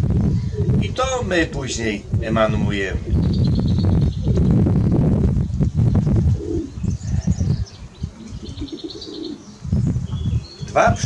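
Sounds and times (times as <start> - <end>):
pigeons cooing: 0.2 - 4.8, 6.0 - 11.0.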